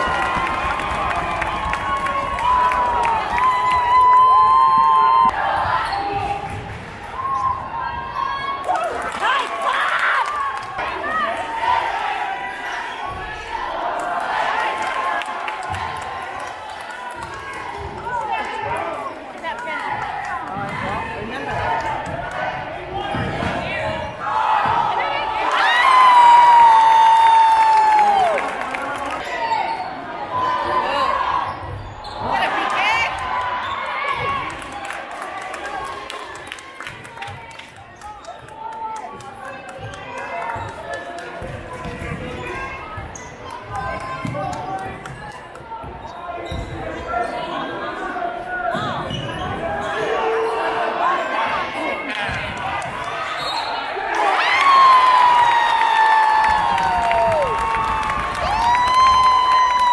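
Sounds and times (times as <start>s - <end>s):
crowd voices echoing in gym: 0.0s - 59.9s.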